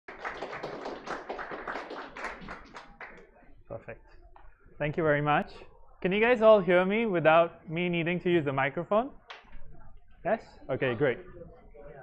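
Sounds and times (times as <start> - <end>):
audience applauding: 0.1 - 3.2.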